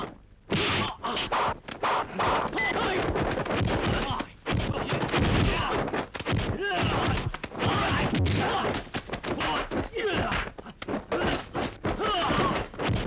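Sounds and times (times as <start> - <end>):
fighters shouting and grunting: 0.5 - 13.0
punch and staff impacts: 2.2 - 13.0.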